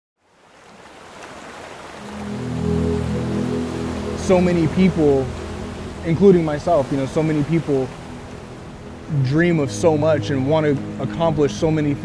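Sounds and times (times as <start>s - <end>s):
ocean surf: 0.2s - 12.0s
low background music chord: 2.0s - 12.0s.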